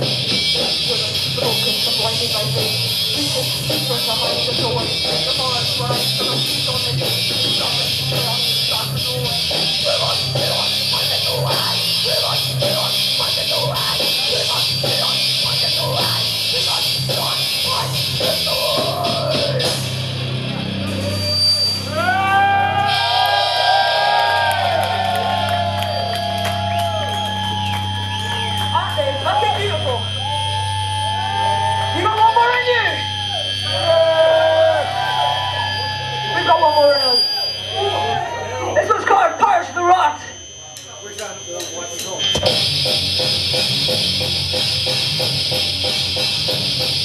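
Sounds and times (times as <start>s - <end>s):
metal band with drums: 0.0s - 21.5s, 41.1s - 47.0s
thin high whine: 20.8s - 47.0s.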